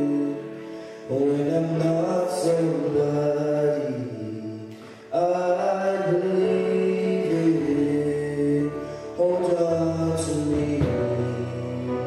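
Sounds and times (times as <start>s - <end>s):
man singing long notes: 0.0s - 12.0s.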